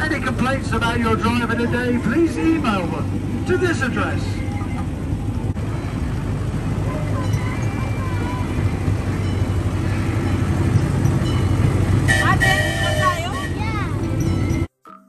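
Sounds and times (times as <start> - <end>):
miniature train rumbling: 0.0 - 14.7.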